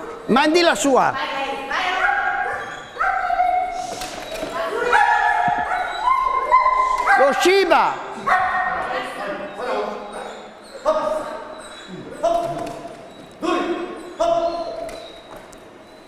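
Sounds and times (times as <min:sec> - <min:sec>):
dog barking: 0:01.8 - 0:03.8, 0:04.7 - 0:07.5, 0:08.2 - 0:10.5.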